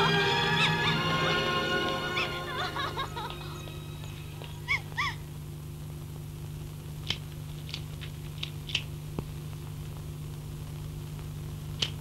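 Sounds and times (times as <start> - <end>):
music cue: 0.0 - 4.7
film soundtrack hum: 0.0 - 12.0.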